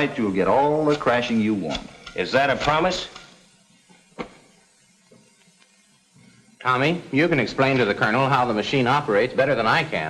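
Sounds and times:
film soundtrack hiss: 0.0 - 10.0.

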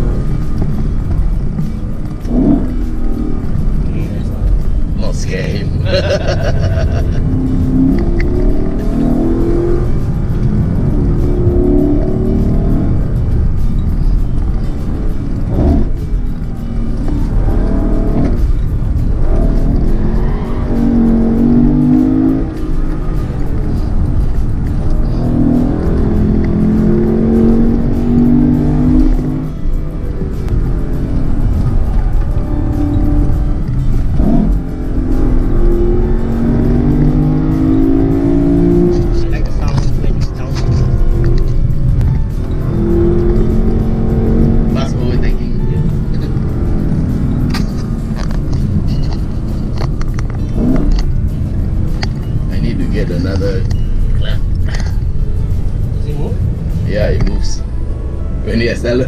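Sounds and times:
car engine pulling hard: 0.0 - 59.0.

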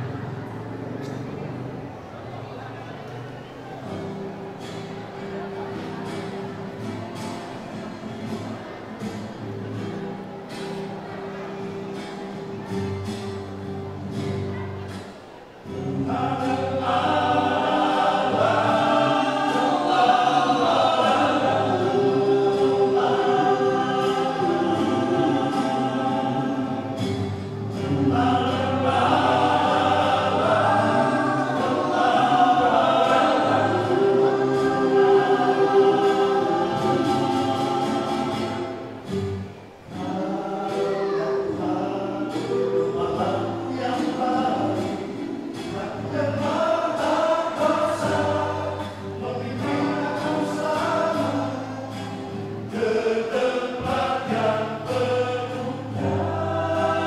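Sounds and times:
men's choir singing in harmony: 15.7 - 57.0.

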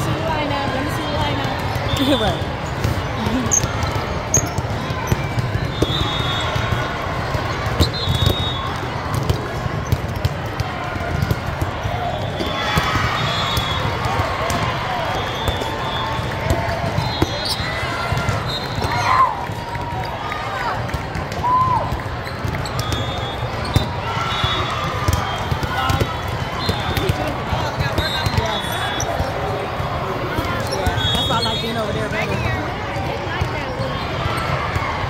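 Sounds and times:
crowd chatter in a hall: 0.0 - 35.0
volleyballs hit and bouncing: 0.0 - 35.0.

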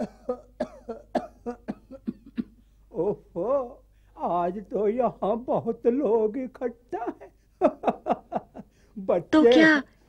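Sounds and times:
person coughing rapidly: 0.0 - 2.6.

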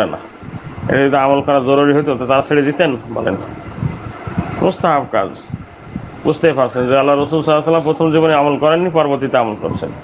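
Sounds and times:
man speaking: 0.0 - 3.6, 4.5 - 5.6, 6.2 - 10.0.

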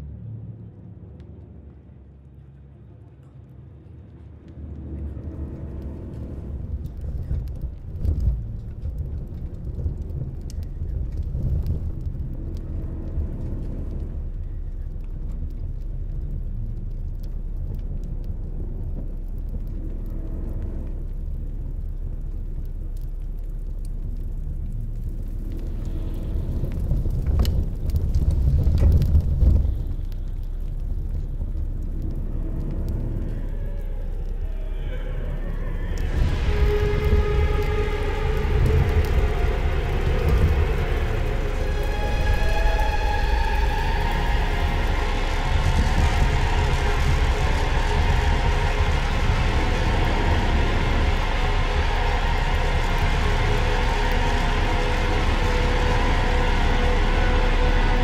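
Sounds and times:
low rumble: 0.0 - 58.0
ominous droning score: 0.0 - 58.0.

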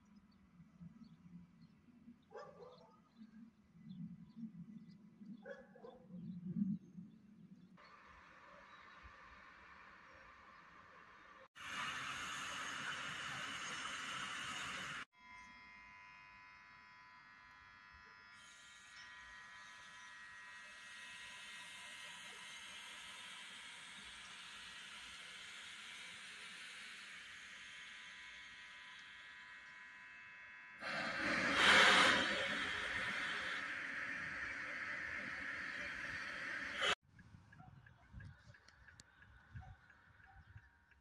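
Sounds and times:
electric locomotive whine: 7.8 - 37.0
train wheels rolling hiss: 30.8 - 37.0.

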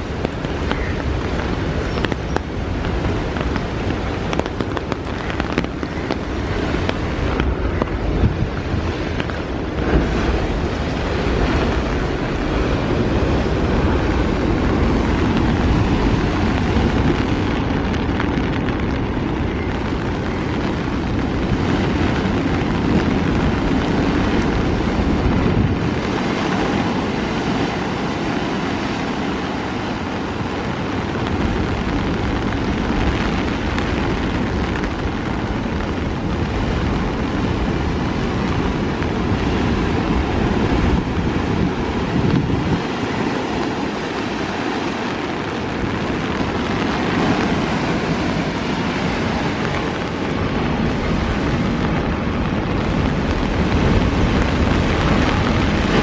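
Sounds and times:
waves breaking on rocks: 0.0 - 56.0
wind buffeting microphone: 0.0 - 56.0.

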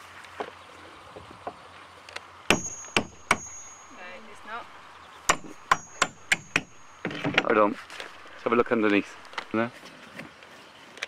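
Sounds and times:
hammer striking nail: 2.5 - 4.0, 5.3 - 8.4.

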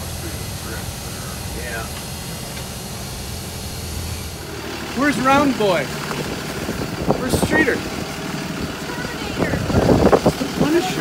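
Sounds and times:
bus engine droning: 0.0 - 11.0
road noise: 0.0 - 11.0.

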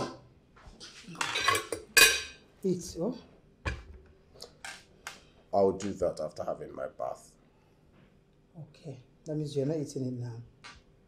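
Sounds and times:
cutlery scraping plates: 0.8 - 2.4
plates and cutlery clinking: 0.8 - 2.4.

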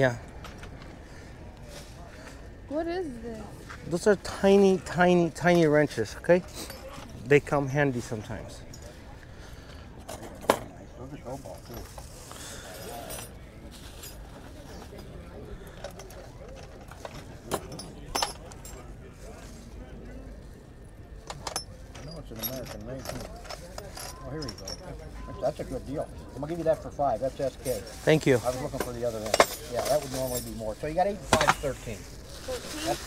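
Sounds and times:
faint background voices: 0.0 - 33.0
metal hand tools clinking: 21.3 - 25.0, 27.6 - 31.8.

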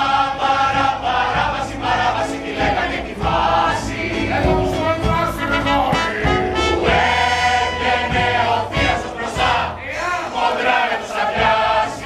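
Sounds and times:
chorus singing: 0.0 - 12.0
instrumental accompaniment: 0.0 - 12.0.

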